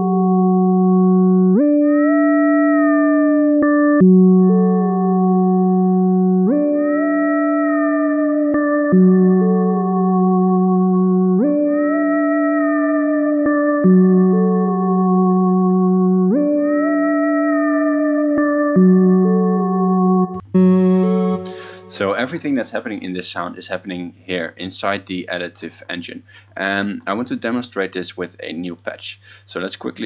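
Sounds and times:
synthesizer sustained notes: 0.0s - 23.0s.

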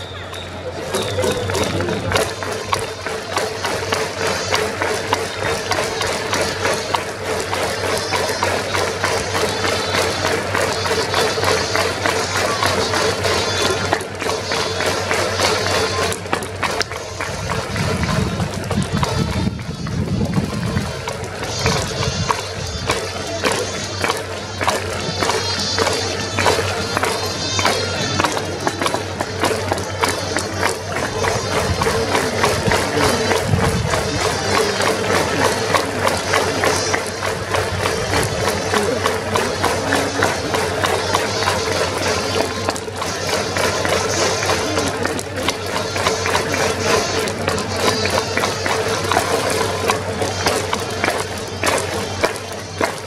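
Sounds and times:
sharp rhythmic strikes: 0.0s - 19.4s, 20.4s - 53.0s
crowd noise: 0.0s - 53.0s
stadium music with steady beat: 0.0s - 53.0s.

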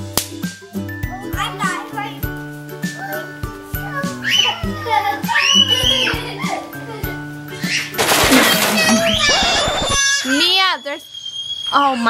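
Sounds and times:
background music: 0.0s - 10.2s
toddlers' voices: 0.7s - 11.0s
child crying out: 3.0s - 10.6s.

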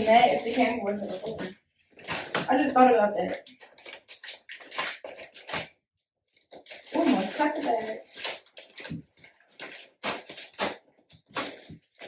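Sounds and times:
plastic mailer bag rustling: 6.5s - 10.8s.

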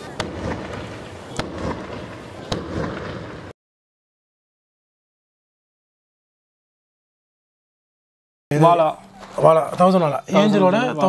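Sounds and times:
firework bangs: 0.0s - 3.6s
fireworks crackling in the sky: 0.0s - 3.6s.

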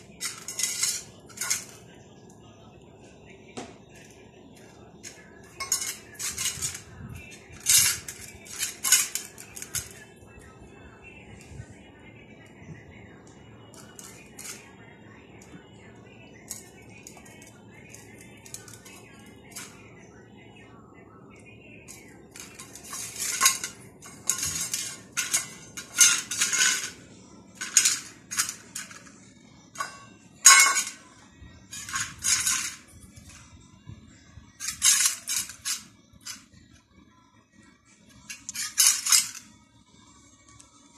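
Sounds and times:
metal bowl scraping on stone floor: 0.2s - 1.8s.

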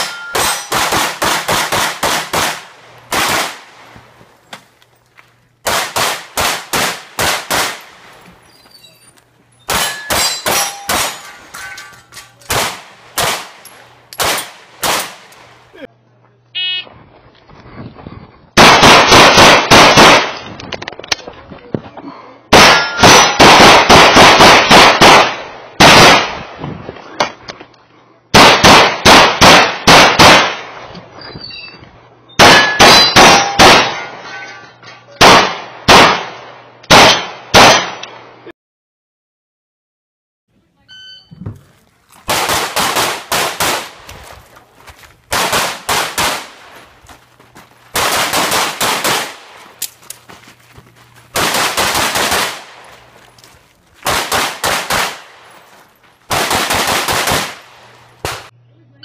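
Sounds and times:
steel targets ringing: 0.0s - 0.8s, 8.8s - 12.4s, 22.7s - 23.4s, 32.5s - 34.8s
pistol shots: 0.0s - 3.7s, 5.6s - 8.0s, 9.7s - 11.5s, 12.5s - 15.5s, 18.6s - 20.4s, 22.5s - 26.4s, 28.4s - 30.7s, 32.4s - 34.2s, 35.2s - 38.3s, 42.3s - 44.0s, 45.3s - 46.8s, 48.0s - 49.9s, 51.3s - 53.0s, 54.0s - 55.5s, 56.3s - 58.5s.

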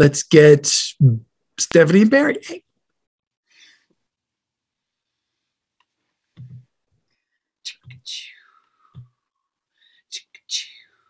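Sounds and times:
breathy whispered vocal noises: 10.0s - 11.0s.

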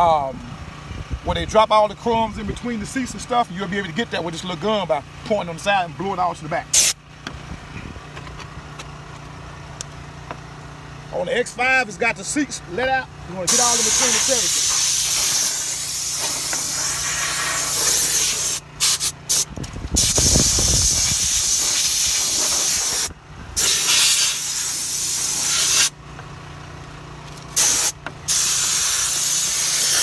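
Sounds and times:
compressed air blow gun hissing: 6.8s - 7.0s, 13.5s - 25.9s, 27.6s - 30.0s.

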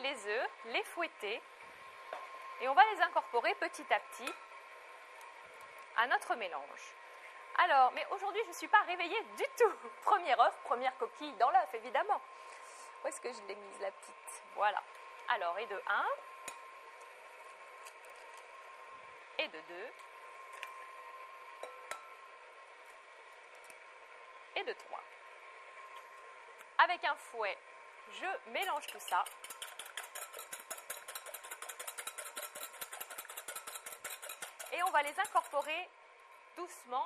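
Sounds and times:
faint steady hum: 0.0s - 37.0s
whisk clicking against glass bowl: 28.6s - 35.7s.

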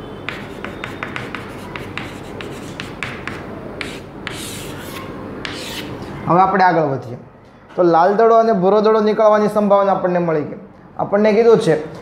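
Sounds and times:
chalk scratching on chalkboard: 0.3s - 6.0s.

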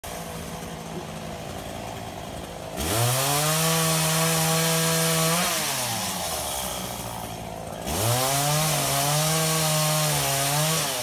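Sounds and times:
chainsaw engine idling: 0.0s - 11.0s.

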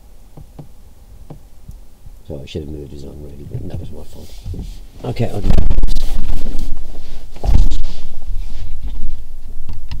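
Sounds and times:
car cabin rumble: 3.2s - 7.8s.

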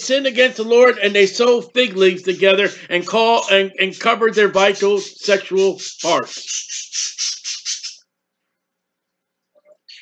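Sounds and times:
bird rapid short calls: 5.8s - 8.0s.

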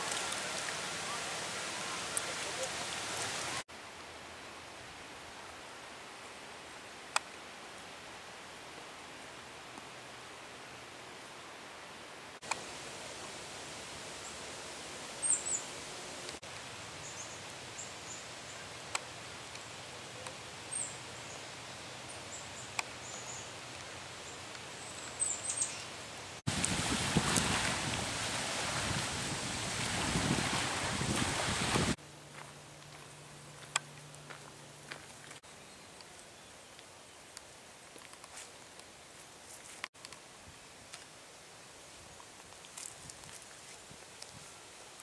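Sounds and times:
songbirds chirping: 17.0s - 26.3s, 33.0s - 39.5s.

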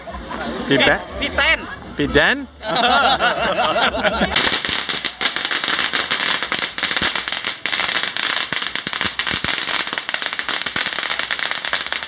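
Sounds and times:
firecrackers cracking: 4.3s - 12.0s.

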